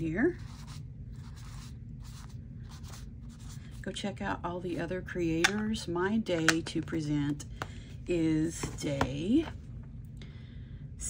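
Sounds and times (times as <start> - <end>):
ink pad scratching on card: 0.4 - 3.6.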